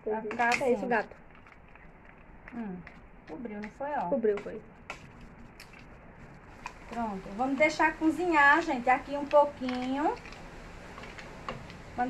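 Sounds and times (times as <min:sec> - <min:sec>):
wooden spoon stirring pasta: 0:00.2 - 0:12.0.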